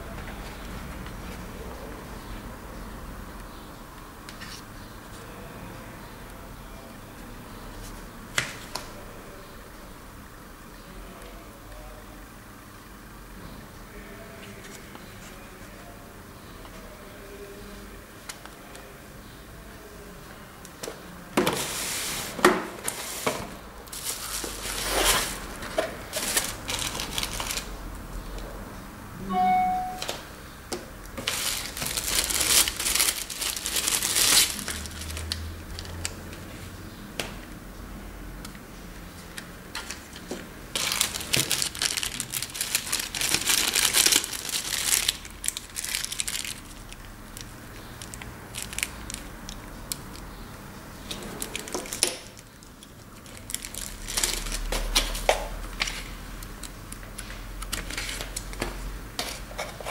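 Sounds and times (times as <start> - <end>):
plastic bag crinkling: 23.9 - 27.8, 31.2 - 36.1, 40.7 - 49.6, 51.4 - 58.6.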